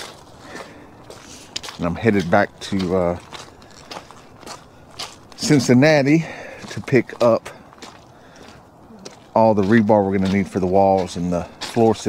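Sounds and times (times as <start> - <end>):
footsteps on gravel: 0.0 - 12.0
person saying uh: 5.4 - 7.6, 8.9 - 12.0.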